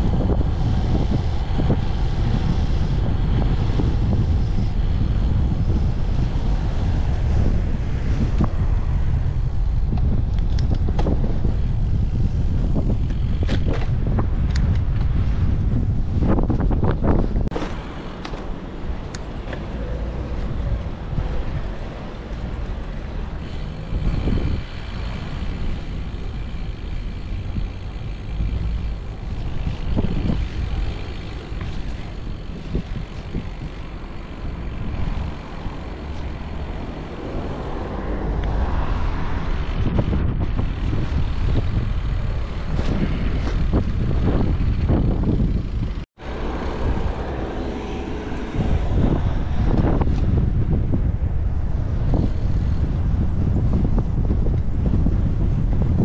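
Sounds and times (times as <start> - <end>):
road traffic passing: 0.0 - 56.0
wind rumbling on microphone: 0.0 - 56.0.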